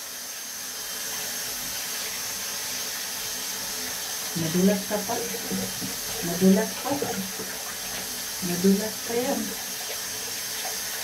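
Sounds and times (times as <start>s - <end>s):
tap water running: 0.0s - 11.0s.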